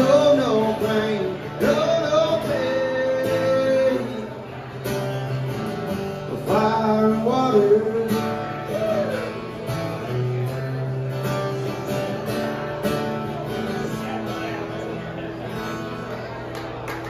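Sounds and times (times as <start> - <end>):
acoustic guitars strumming: 0.0 - 17.0.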